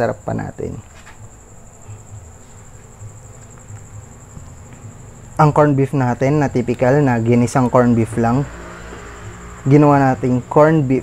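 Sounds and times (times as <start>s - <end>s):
cricket trilling: 0.0s - 11.0s.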